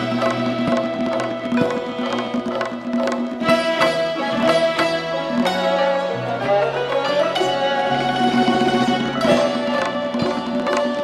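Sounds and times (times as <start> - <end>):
bowed fiddle long notes: 0.0 - 11.0
plucked lutes in tremolo: 0.0 - 11.0.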